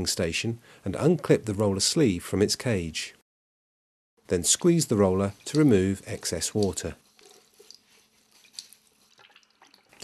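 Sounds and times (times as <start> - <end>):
water dripping and splashing: 5.1 - 10.0.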